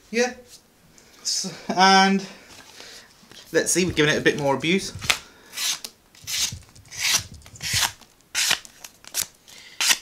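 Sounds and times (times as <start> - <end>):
knife slicing cardboard: 5.6 - 10.0.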